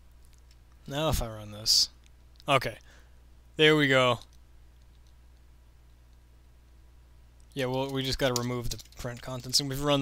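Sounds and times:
low room hum: 0.0 - 10.0
man speaking: 0.9 - 2.8, 3.6 - 4.3, 7.6 - 10.0.

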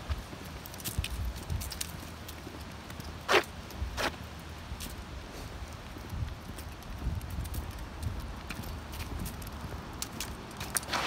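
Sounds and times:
footsteps on dirt path: 0.0 - 4.2, 4.8 - 11.0
rustle of dry leaves: 0.0 - 11.0.

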